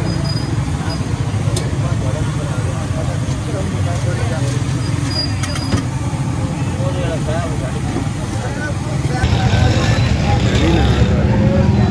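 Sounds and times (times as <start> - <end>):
low traffic rumble: 0.0 - 11.9
people talking: 0.0 - 11.9.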